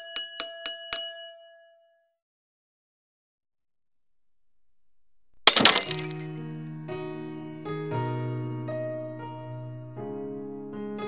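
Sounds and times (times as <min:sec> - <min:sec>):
glass shattering: 0:05.5 - 0:06.4.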